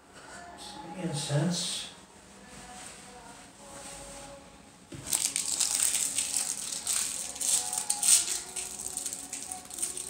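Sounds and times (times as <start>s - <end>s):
crinkling and rustling: 5.0s - 10.0s.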